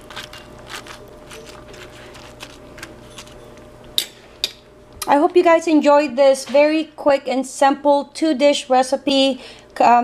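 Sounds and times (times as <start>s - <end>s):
broth simmering with crackles: 0.0s - 4.0s
faint steady hum: 0.0s - 10.0s.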